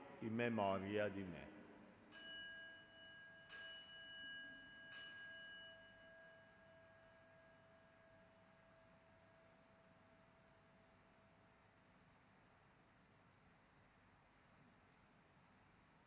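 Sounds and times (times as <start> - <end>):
altar bell ringing: 2.1 - 8.3.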